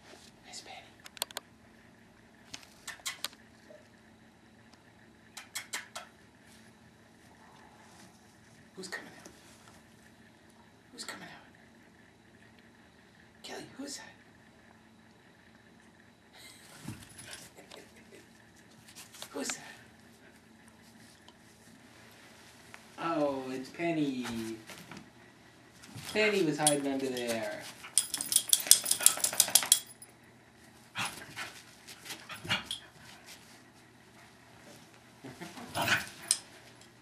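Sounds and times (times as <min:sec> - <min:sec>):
dogs playing on carpet: 0:18.6 - 0:19.3, 0:24.3 - 0:29.8, 0:30.6 - 0:37.0
rustling and scuffing with clicks: 0:25.7 - 0:27.9
dogs' clicks and jingles: 0:26.0 - 0:30.1, 0:32.0 - 0:33.3, 0:35.8 - 0:36.9.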